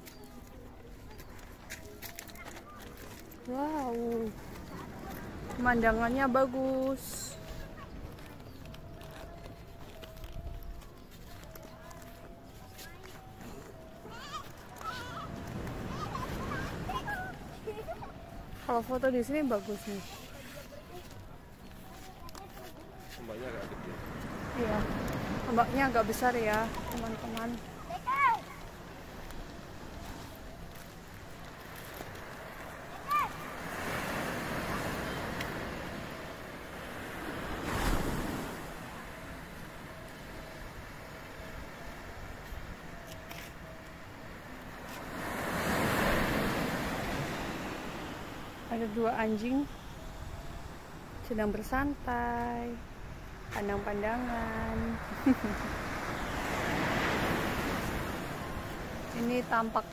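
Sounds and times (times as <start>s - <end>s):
small waves washing up beach: 0.0s - 59.9s.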